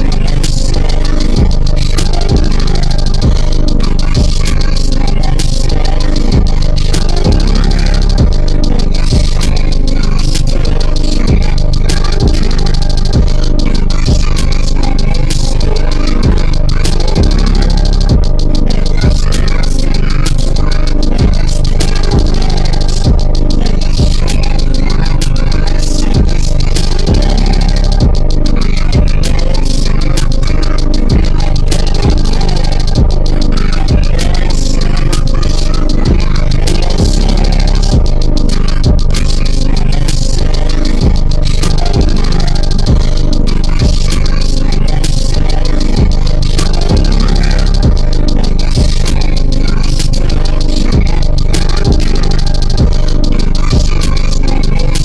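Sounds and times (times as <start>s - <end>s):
trap music with deep bass: 0.0s - 55.0s.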